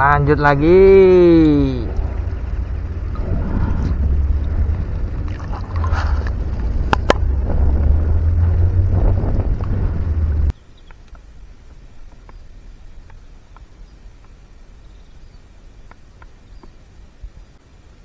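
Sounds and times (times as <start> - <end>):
quiet outdoor background: 0.0 - 18.0
wind buffeting microphone: 0.3 - 10.5.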